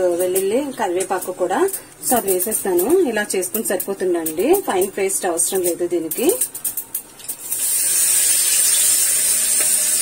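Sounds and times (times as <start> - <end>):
woman talking: 0.0 - 6.5.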